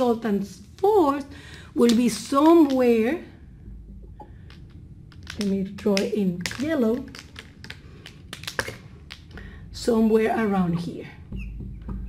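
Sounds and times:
plastic markers clicking and tapping: 0:01.8 - 0:02.9, 0:04.4 - 0:09.4.

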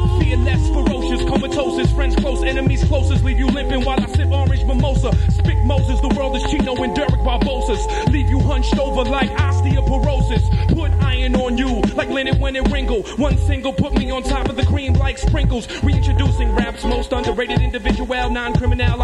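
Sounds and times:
man rapping over hip hop beat: 0:00.0 - 0:19.0.

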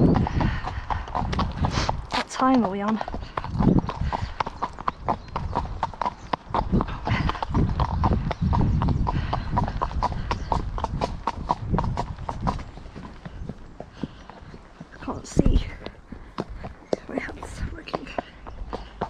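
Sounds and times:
horse hooves on gravel: 0:00.0 - 0:19.0.

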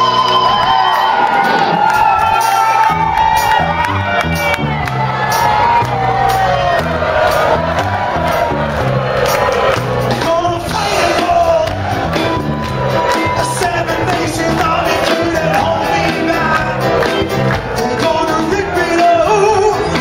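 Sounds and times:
bass line: 0:00.0 - 0:20.0
crowd cheering: 0:00.0 - 0:20.0
live rock band playing: 0:00.0 - 0:20.0.

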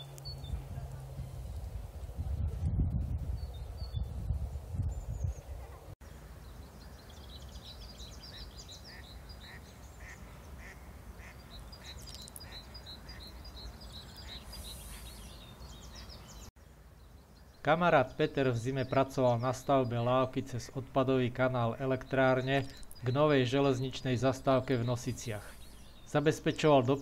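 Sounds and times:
birds calling: 0:06.0 - 0:27.0.

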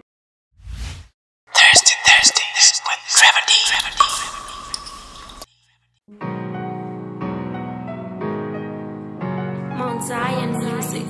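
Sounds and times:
bright whispery rush: 0:01.6 - 0:04.0.

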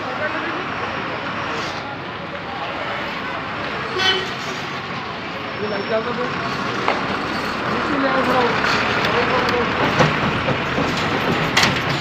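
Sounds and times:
people talking: 0:00.0 - 0:06.9, 0:07.6 - 0:10.2
road traffic: 0:00.0 - 0:12.0.

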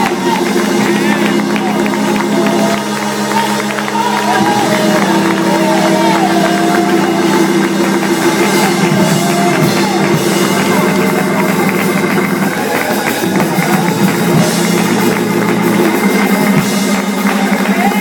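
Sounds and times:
drum kit beat: 0:00.0 - 0:18.0
organ holding chords: 0:00.0 - 0:18.0.

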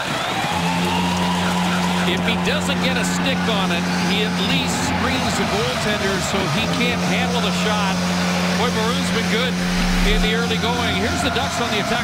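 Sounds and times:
crowd cheering: 0:00.0 - 0:12.0
music over arena speakers: 0:00.1 - 0:12.0
low goal horn blast: 0:09.2 - 0:10.9.

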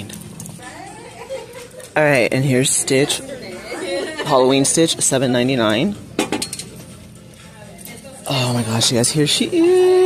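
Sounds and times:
low store background: 0:00.0 - 0:10.0.

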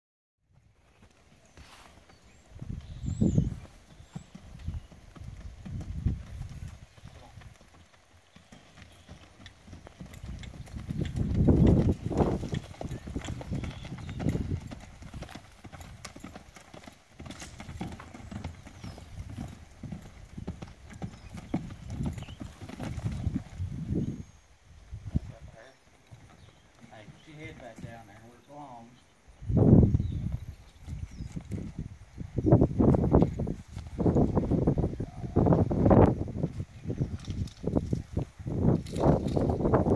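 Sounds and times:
horse hoofbeats on soft dirt: 0:00.5 - 0:24.3, 0:24.9 - 0:29.0, 0:29.7 - 0:39.9.

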